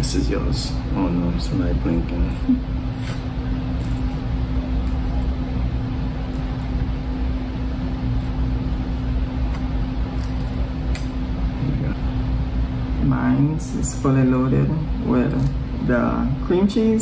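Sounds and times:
air conditioning hum and hiss: 0:00.0 - 0:17.0.

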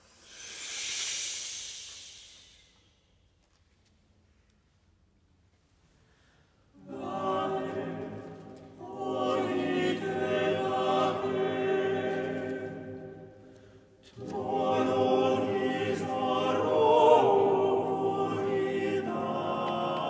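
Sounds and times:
chamber choir singing a cappella: 0:06.8 - 0:20.0.

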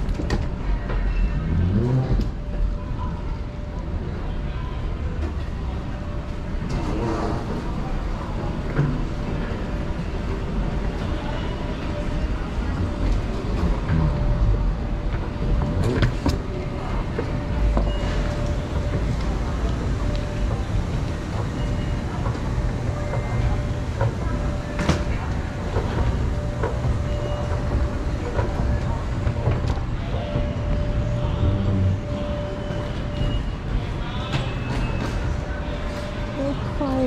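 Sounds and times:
indistinct voices: 0:00.0 - 0:37.0
low rumble of crowd noise: 0:00.0 - 0:37.0.

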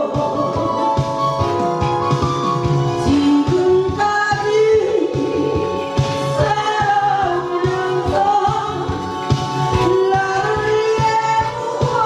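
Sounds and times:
woman singing into microphone: 0:00.0 - 0:01.3, 0:03.0 - 0:12.0
karaoke backing track: 0:00.0 - 0:12.0.

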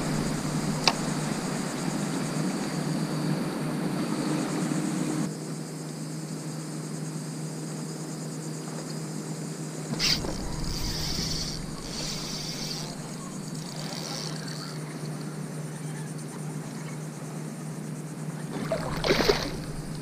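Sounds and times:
distant low hum: 0:00.0 - 0:04.2, 0:09.9 - 0:14.8, 0:18.5 - 0:20.0
thin high buzz: 0:00.0 - 0:05.3, 0:09.9 - 0:15.0.

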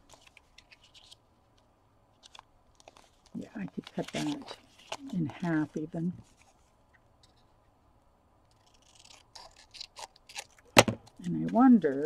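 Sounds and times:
scissors snipping paper: 0:08.5 - 0:10.6.

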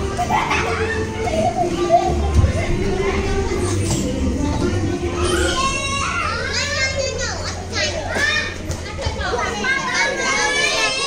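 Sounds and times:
children chattering and calling out: 0:00.0 - 0:11.0
children squealing: 0:05.1 - 0:06.9.

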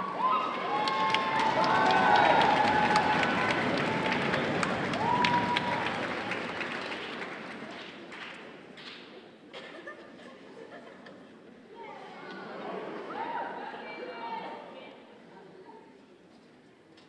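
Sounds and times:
shouted cheers: 0:00.0 - 0:06.7
audience applauding: 0:00.0 - 0:08.9.

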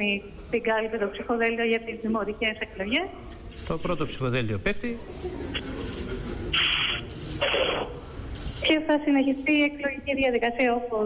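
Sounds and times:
static hiss bursts: 0:06.5 - 0:09.0.

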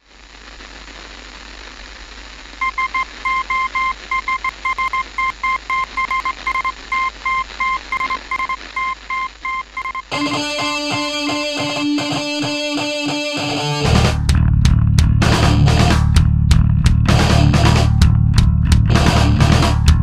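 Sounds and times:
radio static: 0:00.0 - 0:14.3.

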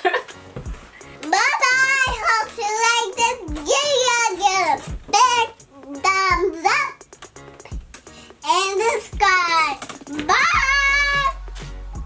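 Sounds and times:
girl singing wordless phrases: 0:01.2 - 0:07.0, 0:08.4 - 0:11.6.

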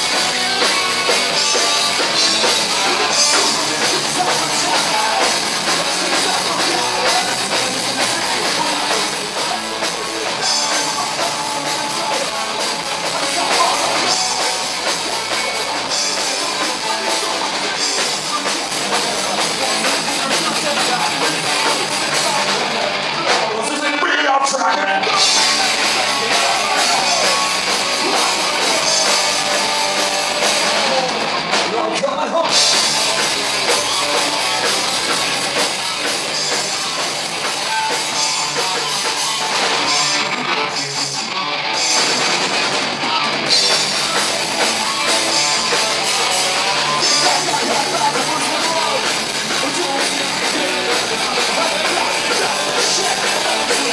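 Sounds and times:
distorted electric guitars: 0:00.0 - 0:53.9
drum kit playing: 0:00.0 - 0:53.9.

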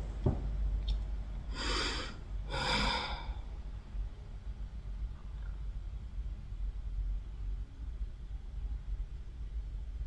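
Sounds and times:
woman breathing: 0:01.5 - 0:03.6.

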